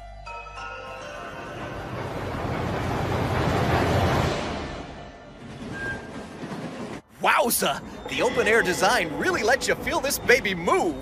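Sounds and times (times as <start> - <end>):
train rumbling through tunnel: 0.8 - 11.0.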